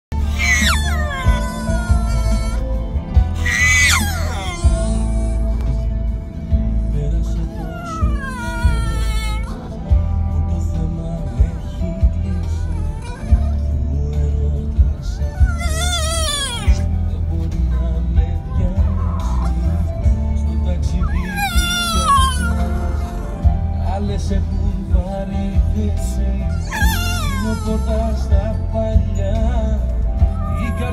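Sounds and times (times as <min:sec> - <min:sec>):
puppy howling: 0:00.1 - 0:05.4, 0:07.4 - 0:09.9, 0:12.0 - 0:13.9, 0:15.0 - 0:16.9, 0:18.5 - 0:20.1, 0:20.9 - 0:23.8, 0:26.5 - 0:28.4, 0:30.2 - 0:30.9
music: 0:00.1 - 0:30.9
pop song playing: 0:00.1 - 0:30.9.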